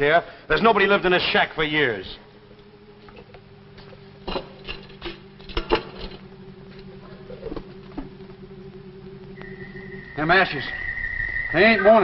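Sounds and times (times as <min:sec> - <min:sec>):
low steady drone: 0:01.6 - 0:12.0.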